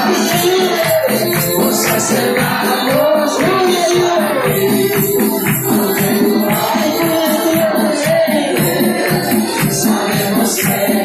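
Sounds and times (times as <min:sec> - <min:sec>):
congregation singing: 0:00.0 - 0:11.0
hand-clapping: 0:00.0 - 0:11.0
tambourine beat: 0:00.0 - 0:11.0
worship band instruments: 0:00.0 - 0:11.0.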